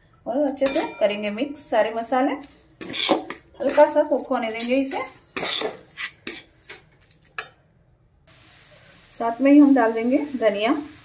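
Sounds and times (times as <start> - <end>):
metal spatula scraping a pan: 0.6 - 7.6.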